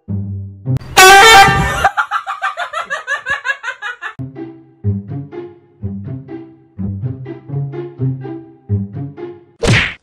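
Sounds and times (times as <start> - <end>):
air horn blast: 0.8 - 1.9.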